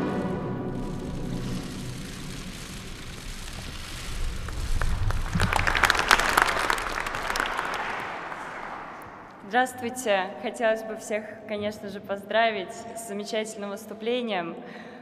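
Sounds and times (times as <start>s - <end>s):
audience applauding: 3.7s - 9.4s.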